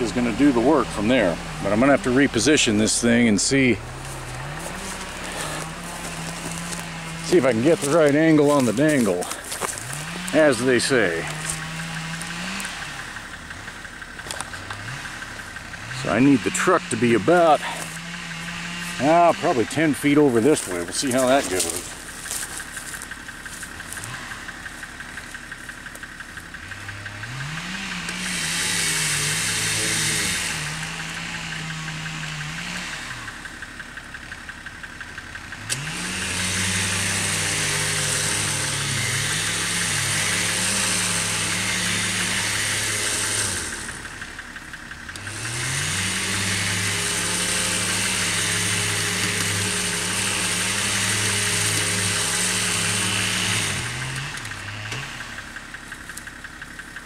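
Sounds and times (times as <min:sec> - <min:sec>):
electric winch motor whining: 0:00.0 - 0:33.7, 0:35.6 - 0:55.5.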